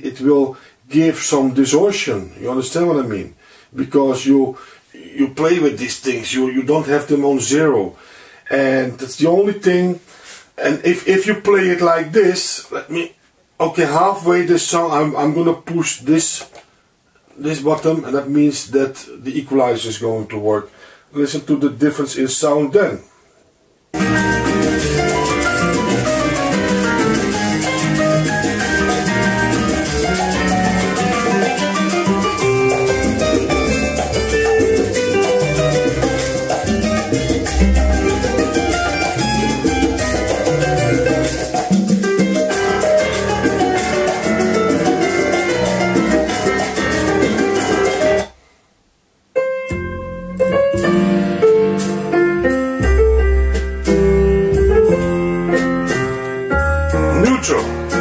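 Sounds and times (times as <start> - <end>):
piano and guitar music on loudspeakers: 24.0 - 48.4, 49.4 - 58.0.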